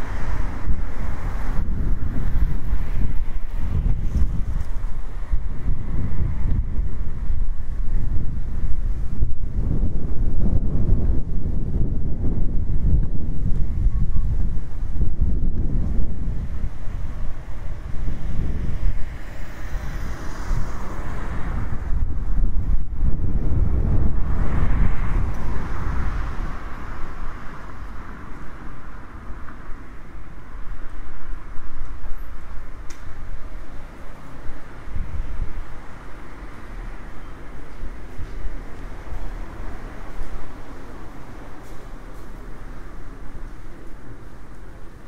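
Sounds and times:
higher rushing wind: 0:00.0 - 0:45.0
wind buffeting microphone: 0:00.0 - 0:45.0.

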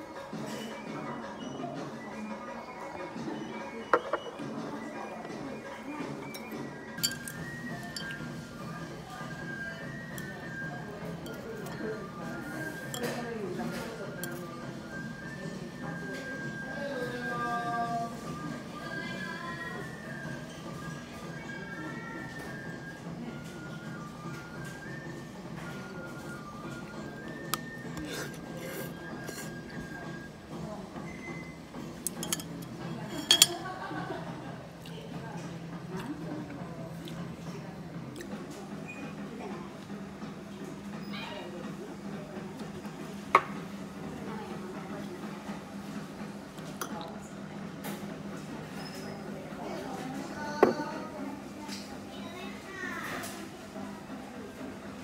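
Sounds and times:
background music: 0:00.0 - 0:40.9
tableware clinking: 0:03.9 - 0:04.4, 0:06.3 - 0:08.3, 0:32.0 - 0:33.7.

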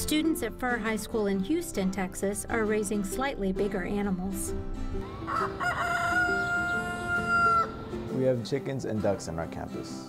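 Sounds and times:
soft background music: 0:00.0 - 0:10.0
rooster crowing: 0:05.0 - 0:07.9.

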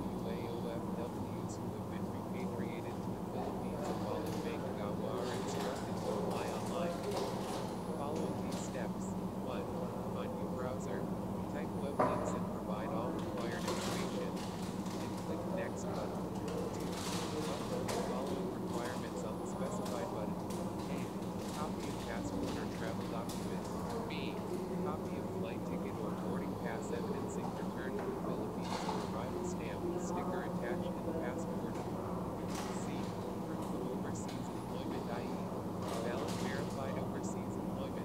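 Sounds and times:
faint speech: 0:00.0 - 0:38.0
person speaking: 0:00.0 - 0:38.0
steady low hum: 0:00.0 - 0:38.0.

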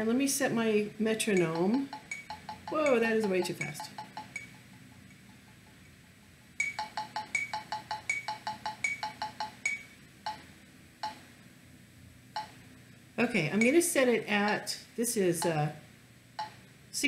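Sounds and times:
electronic metronome beeping: 0:01.3 - 0:05.6, 0:06.6 - 0:11.2, 0:12.4 - 0:12.6, 0:16.4 - 0:16.6.

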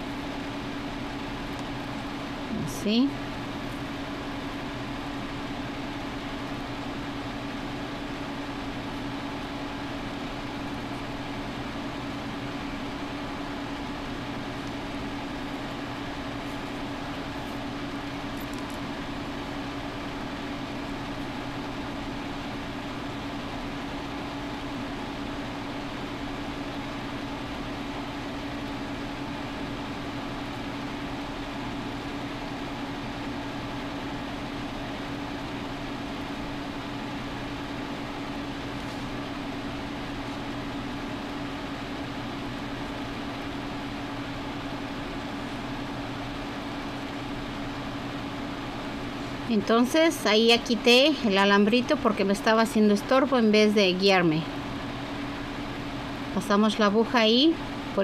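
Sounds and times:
mechanical hum: 0:00.0 - 0:58.0.

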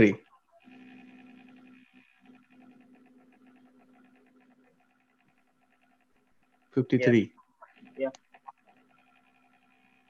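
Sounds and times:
faint buzzing hum: 0:00.0 - 0:10.0.

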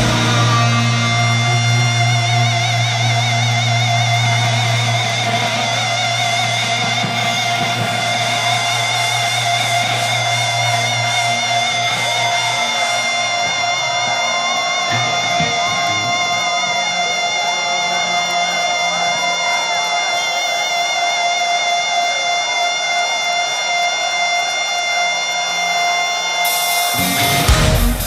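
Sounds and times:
heavy metal band playing: 0:00.0 - 0:21.0, 0:26.4 - 0:28.0
crowd cheering and whistling: 0:00.0 - 0:28.0
electric guitar sustained note: 0:00.0 - 0:28.0.

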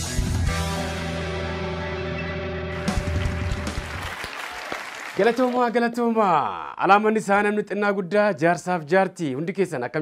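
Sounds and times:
theme music low notes: 0:00.3 - 0:04.1
applause: 0:02.8 - 0:06.0.

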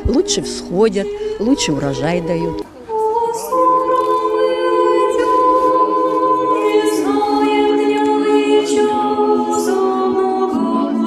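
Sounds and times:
choir singing church chant: 0:00.0 - 0:11.0.

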